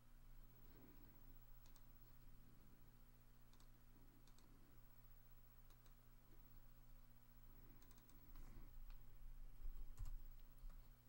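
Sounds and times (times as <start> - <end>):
faint low hum: 0.0 - 11.0
computer mouse clicks: 1.6 - 2.0, 3.5 - 4.6, 5.6 - 6.0, 7.7 - 9.0.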